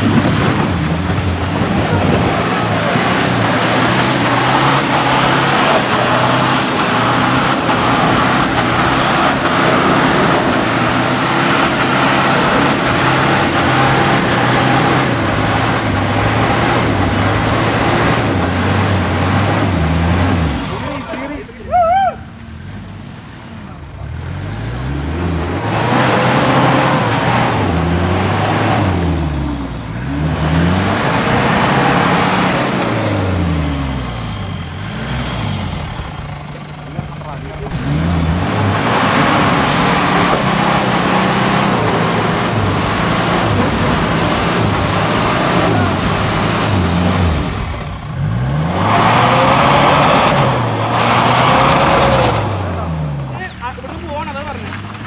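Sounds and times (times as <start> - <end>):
engines revving hard: 0.0 - 55.0.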